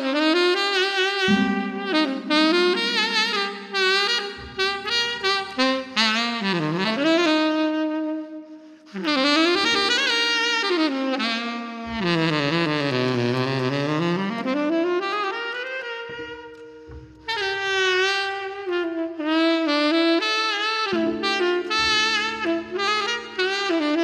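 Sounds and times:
tenor saxophone solo melody: 0.0s - 24.0s.

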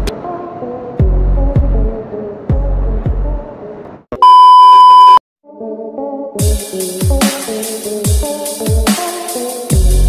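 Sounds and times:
high test-tone beep: 4.2s - 5.2s
electronic music with kick drums: 6.4s - 10.0s.

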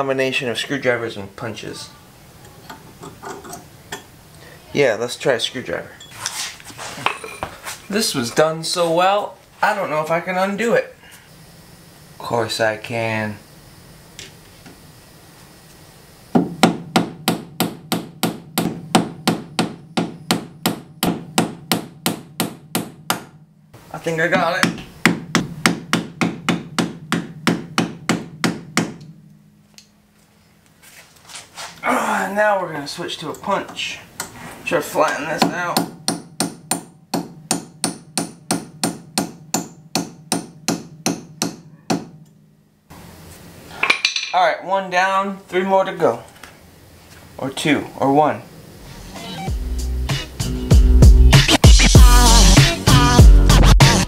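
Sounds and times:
hammer striking metal punch: 16.4s - 23.4s, 24.6s - 29.5s, 35.4s - 42.4s.

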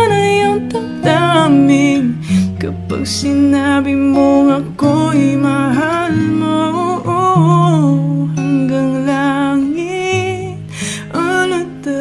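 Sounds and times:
acoustic guitar: 0.0s - 12.0s
person singing long gliding notes: 0.0s - 12.0s.

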